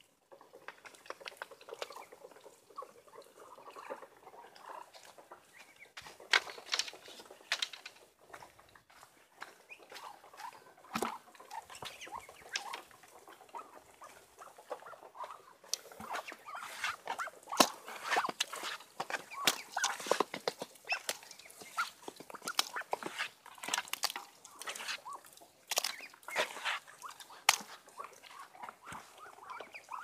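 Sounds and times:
duck bills pecking in a metal pan: 0.2s - 30.0s.

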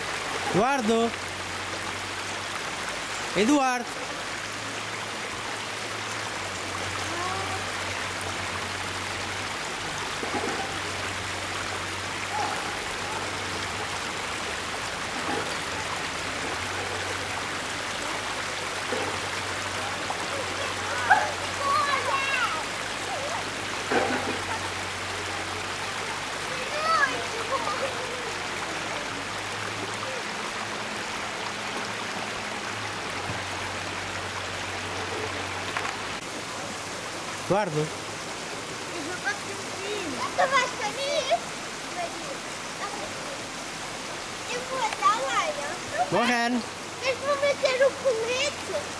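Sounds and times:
river water rushing: 0.0s - 48.9s.

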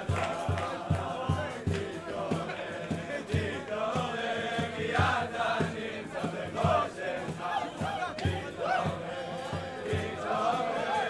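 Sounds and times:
young men singing together: 0.0s - 11.0s.

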